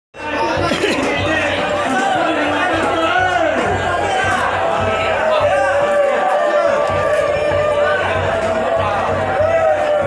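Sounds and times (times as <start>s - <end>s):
crowd talking: 0.1s - 10.0s
background music: 0.2s - 10.0s.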